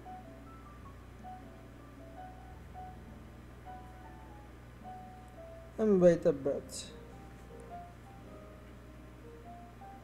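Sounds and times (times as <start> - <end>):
faint jazz music: 0.0 - 10.0
steady low hum: 0.0 - 10.0.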